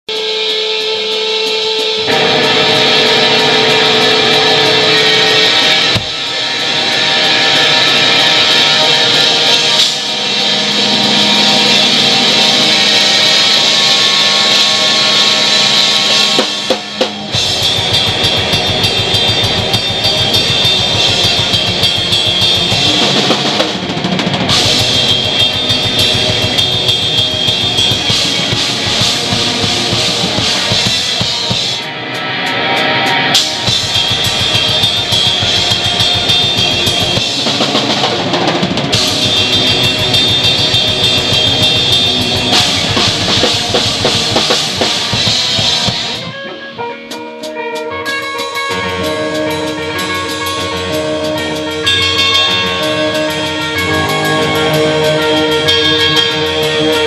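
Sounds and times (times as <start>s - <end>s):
distorted electric guitar: 0.0s - 57.0s
drum kit with cymbals: 0.1s - 57.0s.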